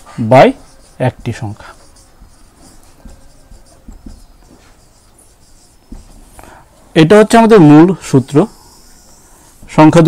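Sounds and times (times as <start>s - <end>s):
marker pen writing on whiteboard: 0.0s - 10.0s.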